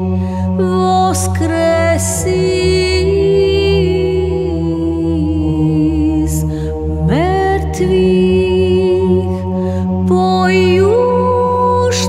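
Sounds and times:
low chanted drone: 0:00.0 - 0:12.0
higher voice chanting: 0:00.6 - 0:09.3.

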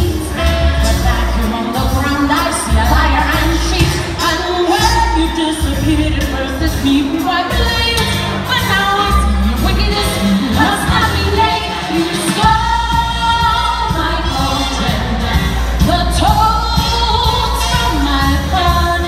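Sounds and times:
female backing vocals: 0:00.0 - 0:19.0
woman singing into microphone: 0:00.0 - 0:19.0.

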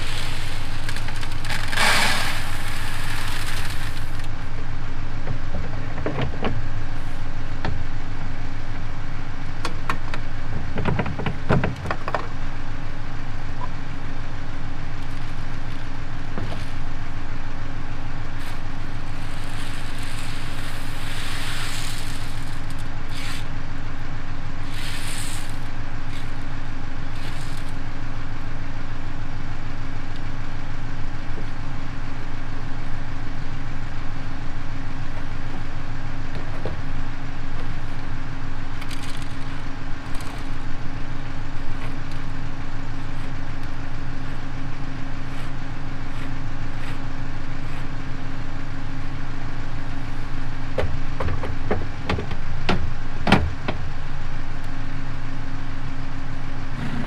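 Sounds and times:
engine idling: 0:00.0 - 0:57.0.

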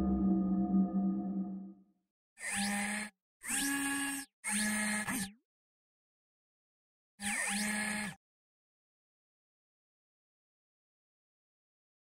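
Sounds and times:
whirring bursts with rising whine: 0:00.0 - 0:01.6.

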